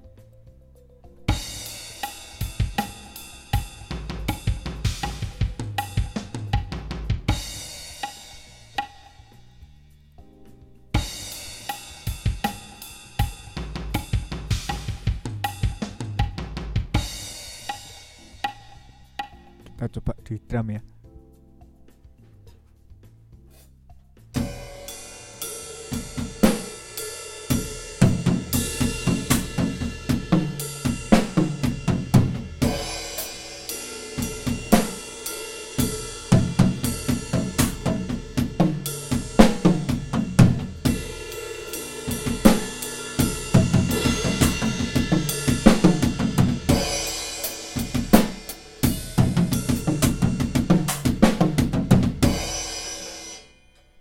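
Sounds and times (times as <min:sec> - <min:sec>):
cymbal accents: 0:01.3 - 0:06.4, 0:24.4 - 0:54.0
drum kit playing fast pattern: 0:01.3 - 0:09.4, 0:11.0 - 0:20.0, 0:24.4 - 0:53.6.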